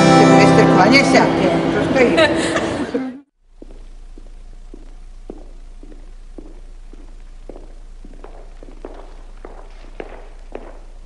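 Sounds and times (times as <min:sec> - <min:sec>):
low steady hum: 0:03.4 - 0:11.0
man's footsteps walking: 0:03.4 - 0:11.0.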